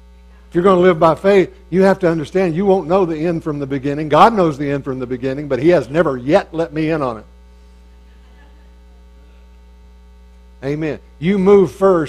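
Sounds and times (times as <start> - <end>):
low electrical mains hum: 0.0 - 12.0.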